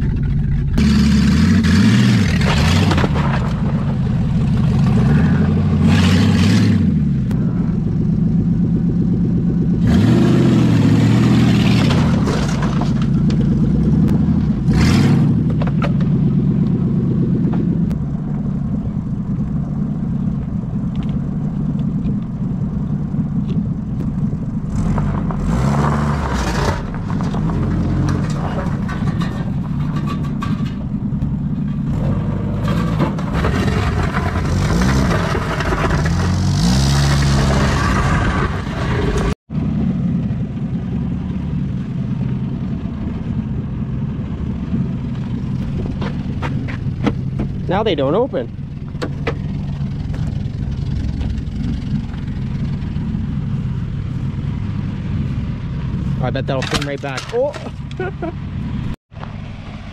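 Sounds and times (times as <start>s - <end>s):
car engine revving: 0.0s - 30.2s, 30.9s - 59.8s.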